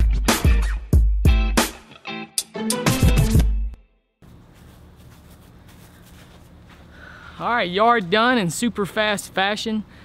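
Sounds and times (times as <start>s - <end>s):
footsteps on grass: 4.2s - 8.2s
outdoor background hum: 4.2s - 10.0s.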